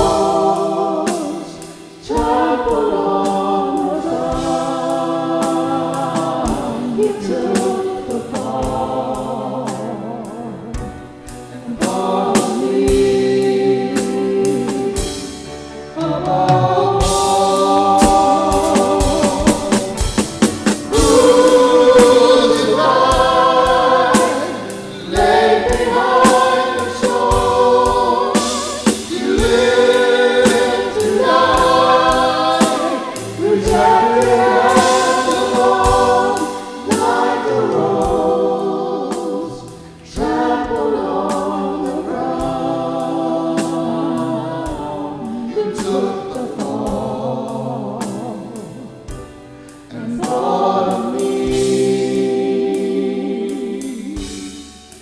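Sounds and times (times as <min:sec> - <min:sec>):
drum and cymbal strikes: 0:00.0 - 0:55.0
group singing worship song: 0:00.0 - 0:55.0
piano: 0:00.0 - 0:55.0.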